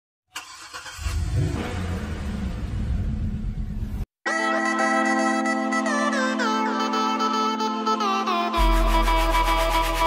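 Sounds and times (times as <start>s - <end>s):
car engine starting and revving: 0.3s - 4.1s.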